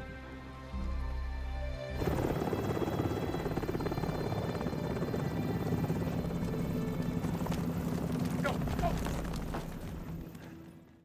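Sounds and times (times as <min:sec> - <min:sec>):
helicopter rotor chopping: 0:02.0 - 0:10.8.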